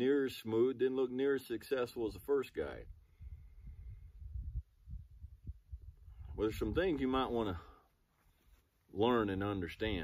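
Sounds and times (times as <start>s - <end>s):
wind buffeting a microphone: 2.6s - 7.6s.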